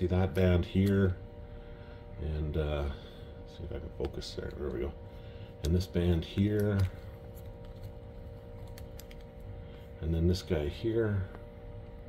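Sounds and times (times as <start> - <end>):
faint steady hum: 0.0 - 12.0
cellophane crackling: 6.4 - 9.7.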